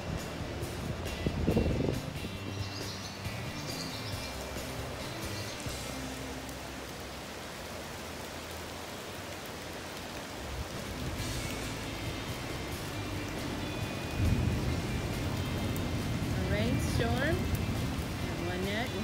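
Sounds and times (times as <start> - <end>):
rain falling on a river: 0.0 - 19.0
soft background music: 0.0 - 19.0
thunder rumbling: 13.8 - 19.0.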